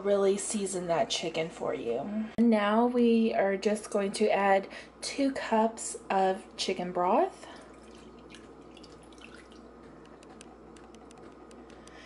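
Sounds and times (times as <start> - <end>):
broth trickling into a pot: 7.4 - 10.1.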